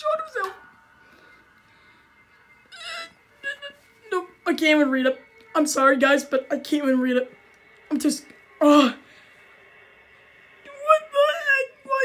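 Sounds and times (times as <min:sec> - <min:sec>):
wavering voice-like cry: 0:02.7 - 0:03.8.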